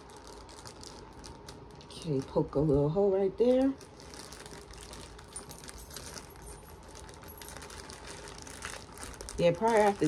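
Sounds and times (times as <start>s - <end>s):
plastic packaging crinkling: 0.0s - 10.0s.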